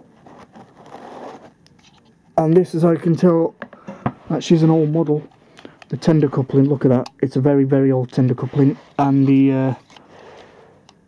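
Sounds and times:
faint scraping and rustling: 0.0s - 2.5s, 4.1s - 7.0s, 7.6s - 10.8s.

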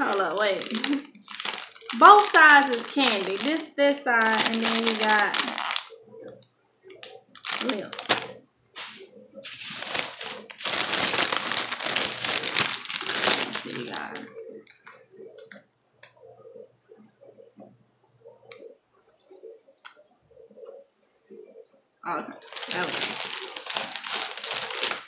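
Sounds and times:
rustling handling noise: 0.0s - 6.4s, 7.0s - 15.6s, 22.4s - 25.0s.

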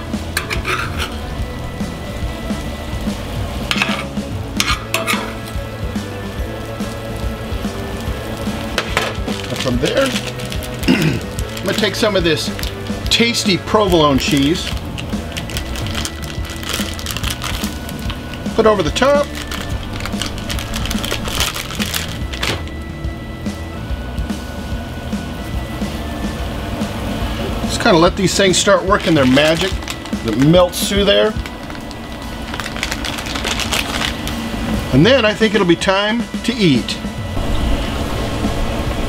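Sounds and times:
low steady rumble: 0.0s - 35.0s, 37.0s - 39.0s
meat and vegetables sizzling in skillet: 0.0s - 35.8s
background music: 0.0s - 39.0s.

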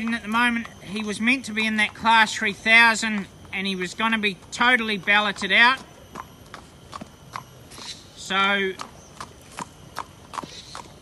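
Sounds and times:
horse hooves on pavement: 0.0s - 11.0s.

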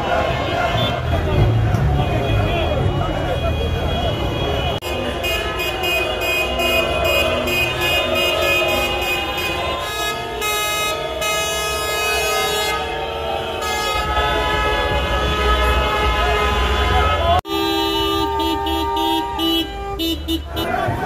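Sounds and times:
car horns honking: 0.0s - 21.0s.

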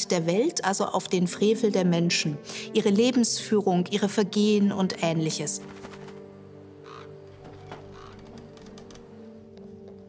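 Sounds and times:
crow cawing: 6.8s - 8.7s.

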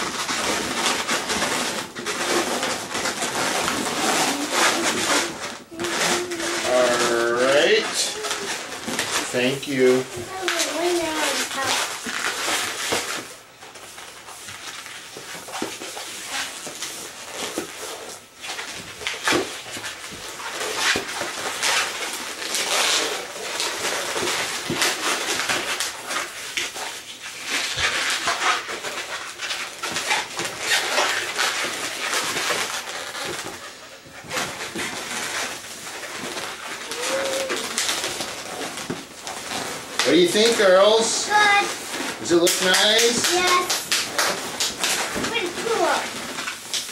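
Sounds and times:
balloons squeaking and rubbing: 0.0s - 46.9s.

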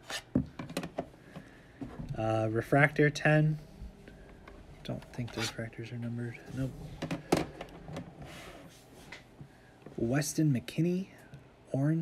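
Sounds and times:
soft rub: 8.2s - 9.2s.

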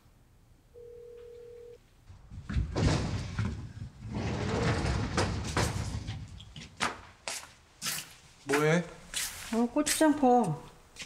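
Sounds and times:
phone ringback tone: 0.8s - 1.8s
sliding door rattling: 2.4s - 6.5s.

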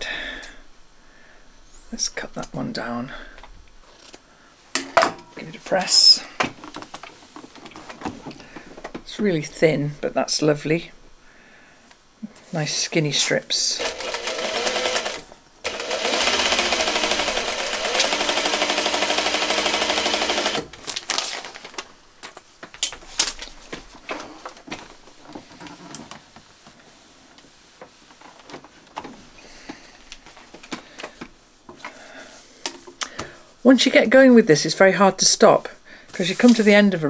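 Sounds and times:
sewing machine stitching: 13.8s - 20.7s
fabric rustling: 20.7s - 30.8s.

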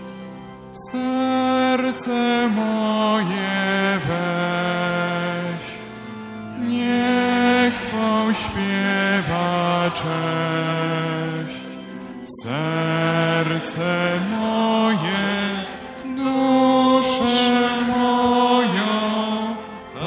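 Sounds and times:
hymn singing with accompaniment: 0.0s - 20.0s.

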